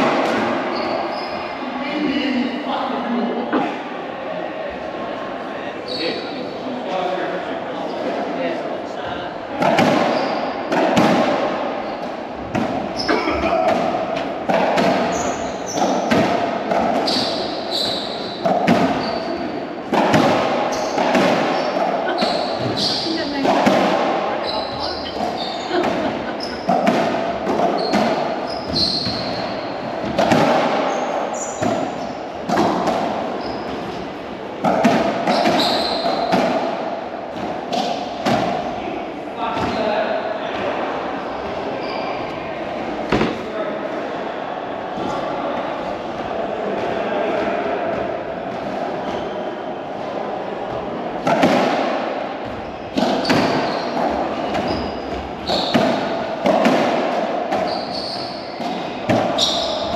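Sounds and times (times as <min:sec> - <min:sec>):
racquetball hitting racquets and walls: 0:00.0 - 0:01.4, 0:09.5 - 0:44.2, 0:44.9 - 0:59.9.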